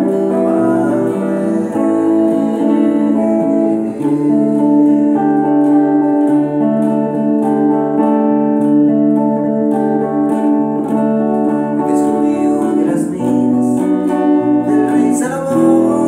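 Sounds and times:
acoustic guitar chords: 0.0 - 16.0
electric guitar chords: 0.0 - 16.0.

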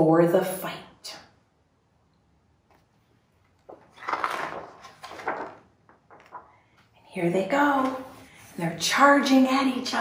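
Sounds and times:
paper pages turning: 2.7 - 6.9.

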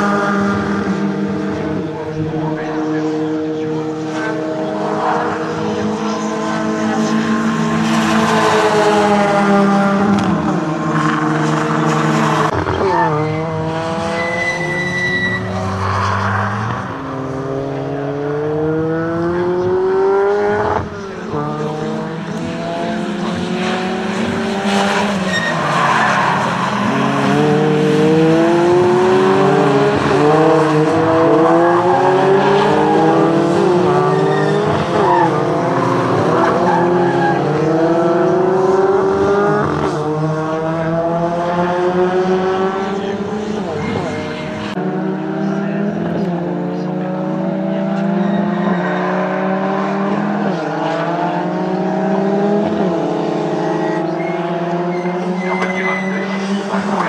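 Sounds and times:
race car engines accelerating: 0.0 - 57.0.

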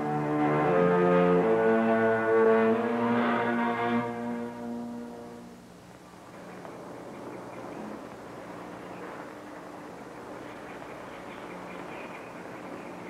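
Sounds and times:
sustained brass chord: 0.0 - 5.7
faint background noise: 0.0 - 13.0.

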